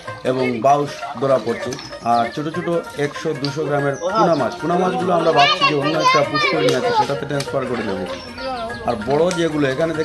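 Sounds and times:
crowd chattering excitedly: 0:02.1 - 0:10.0.

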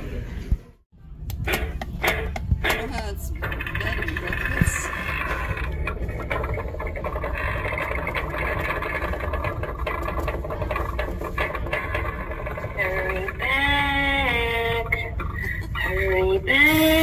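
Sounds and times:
steady low rumble: 0:00.0 - 0:16.6.

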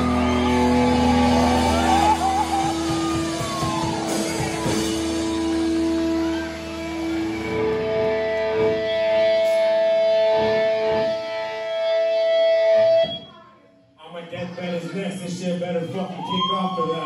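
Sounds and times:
drum hits: 0:00.0 - 0:05.9
electric guitars held notes: 0:00.0 - 0:13.4.

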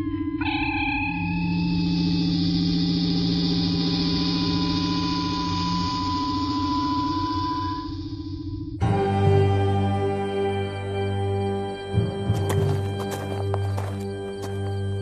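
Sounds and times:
shimmering pulsing tone: 0:00.4 - 0:08.5.

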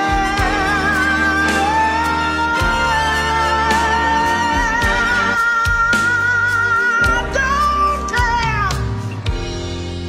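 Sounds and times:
soul ballad band playing: 0:00.0 - 0:10.0.

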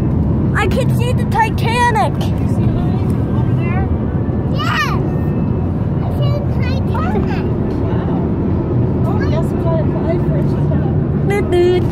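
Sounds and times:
road and engine noise in car: 0:00.0 - 0:11.9.

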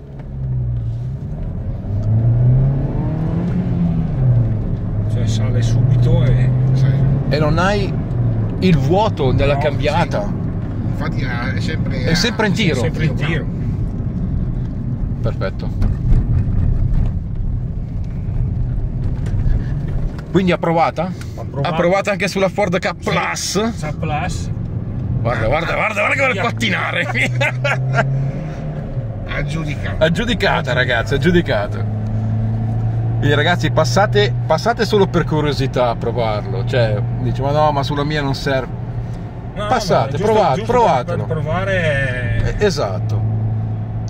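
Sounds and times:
car engine accelerating: 0:00.0 - 0:44.0
road noise: 0:00.0 - 0:44.0.

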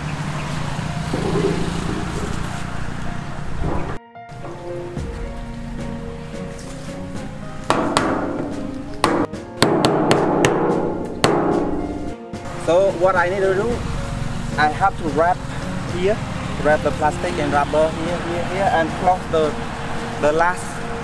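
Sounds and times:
background music: 0:00.0 - 0:21.0
hammer knocking on plastic pipe: 0:07.7 - 0:12.0.

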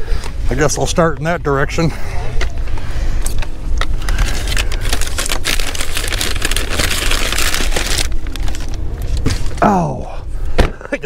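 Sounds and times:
low rumble: 0:00.0 - 0:10.8
plastic bags rustling and crinkling: 0:03.9 - 0:09.6.

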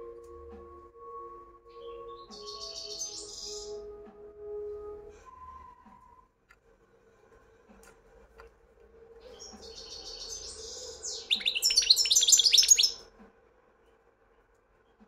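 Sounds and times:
goldfinch singing: 0:01.7 - 0:03.8, 0:09.3 - 0:13.0.

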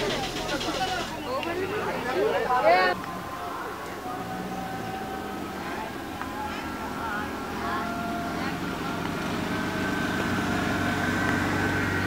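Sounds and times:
car engine running at low speed: 0:03.0 - 0:12.0.

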